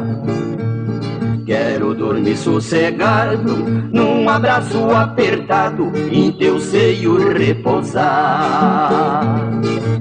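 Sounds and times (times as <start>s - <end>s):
acoustic guitar fill: 0.0s - 10.0s
two people singing: 1.4s - 9.8s.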